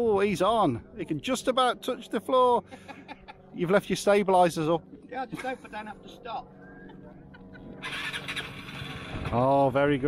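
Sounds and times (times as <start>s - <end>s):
scooter engine revving: 7.6s - 9.4s.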